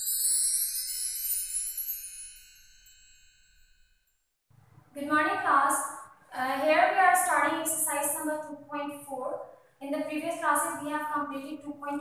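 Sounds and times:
ringing jingle chimes: 0.0 - 4.3
woman speaking: 5.0 - 12.0.

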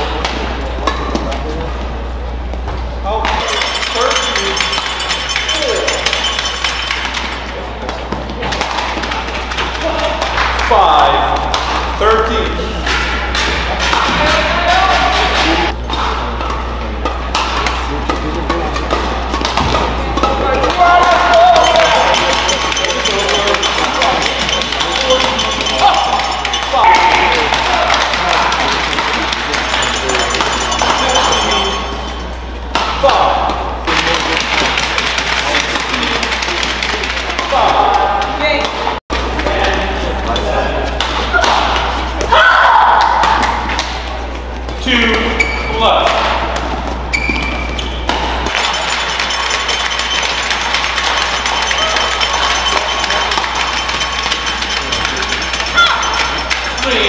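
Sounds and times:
crowd voices and shouts: 0.0 - 57.0
steady low hum: 0.0 - 57.0
racket striking shuttlecock: 12.8 - 29.8, 31.9 - 33.6, 46.0 - 56.7.

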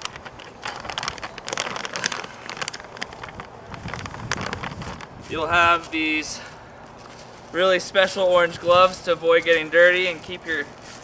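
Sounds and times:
bag rustling and crinkling: 0.0 - 7.8, 8.7 - 11.0.

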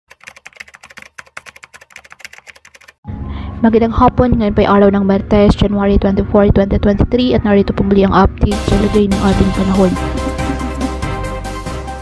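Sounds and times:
computer keyboard keystroke clicks: 0.1 - 3.0.

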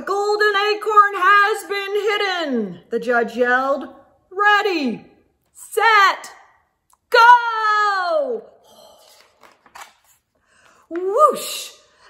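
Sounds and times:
paper page turning: 8.9 - 10.4.

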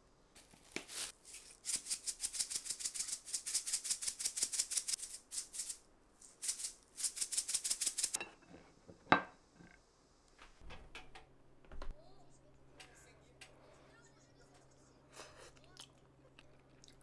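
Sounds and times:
seeds rattling in plastic shaker: 0.4 - 8.2.

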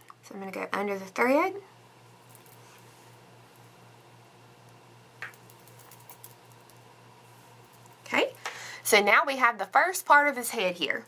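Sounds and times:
steady low hum: 0.0 - 11.0
fingers rustling and ticking beads: 5.2 - 6.8.

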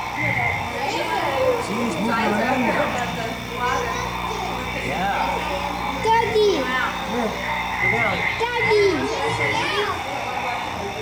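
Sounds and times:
people talking: 0.0 - 11.0
steady low hum: 0.0 - 11.0.

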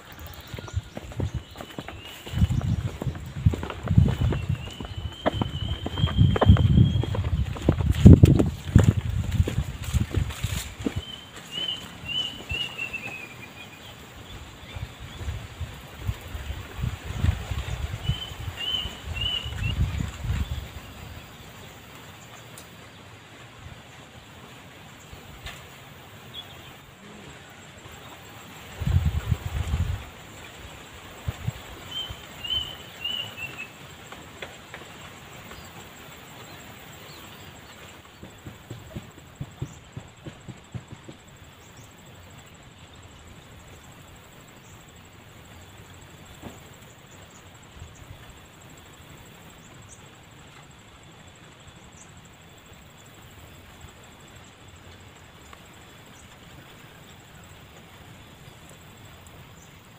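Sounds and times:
bird chirping: 0.0 - 8.4, 10.4 - 15.3, 31.9 - 33.8
wind buffeting microphone: 0.0 - 12.7, 14.1 - 21.4, 28.5 - 33.2.

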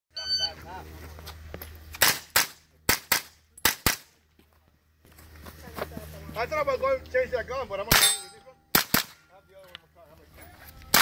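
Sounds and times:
pistol shots: 7.9 - 9.2.

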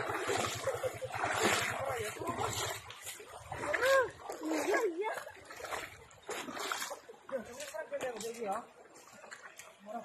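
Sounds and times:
splashing and squelching in mud: 0.0 - 10.0.

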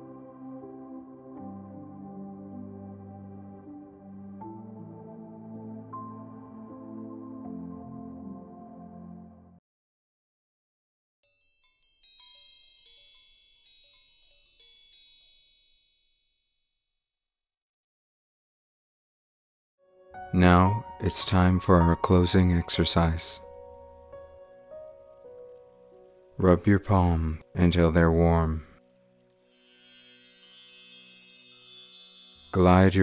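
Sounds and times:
high metallic chime ringing: 11.2 - 16.6, 29.4 - 33.0.

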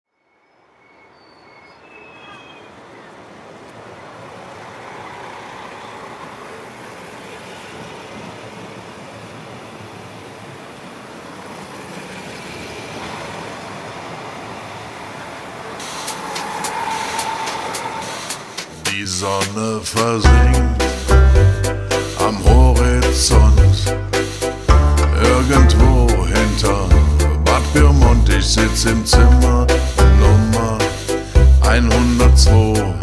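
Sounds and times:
rail and road traffic rumble: 0.2 - 33.0.

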